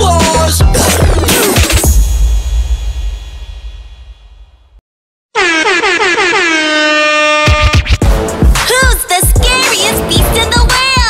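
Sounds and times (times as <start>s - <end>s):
air horn blasts: 5.3s - 8.0s.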